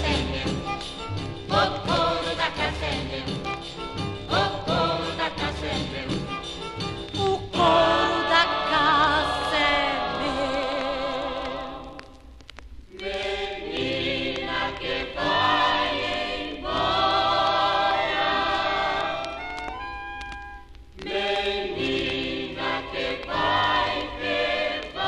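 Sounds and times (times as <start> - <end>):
vocal group singing harmony: 0.0 - 3.6, 4.2 - 6.5, 7.2 - 12.2, 12.9 - 19.6, 21.0 - 25.0.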